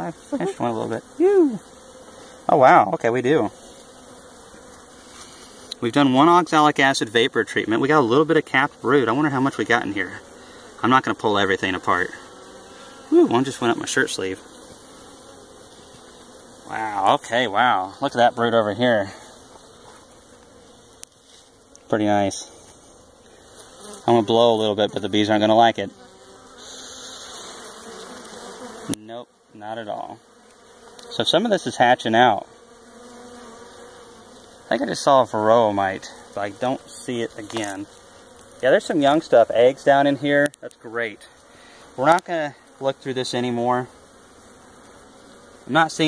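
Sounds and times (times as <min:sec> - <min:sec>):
bees buzzing: 0:00.0 - 0:46.0.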